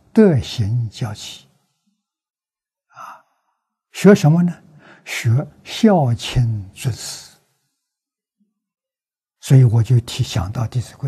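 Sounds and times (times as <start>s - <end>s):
man breathing: 4.7s - 5.1s.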